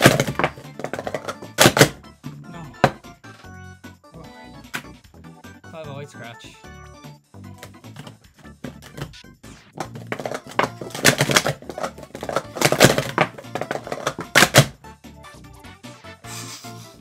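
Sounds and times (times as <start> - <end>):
plastic cups clacking: 0.0 - 2.0, 9.8 - 14.7
background music: 0.0 - 17.0.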